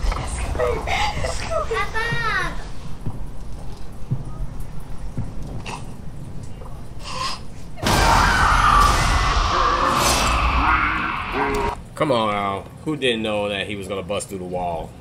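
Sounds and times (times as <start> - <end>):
woman screaming: 7.8 - 11.7
loud crash through wall: 7.8 - 11.8.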